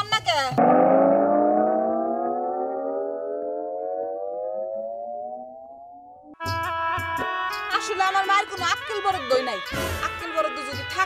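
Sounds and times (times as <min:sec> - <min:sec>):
siren-like rising tone: 0:00.6 - 0:06.4.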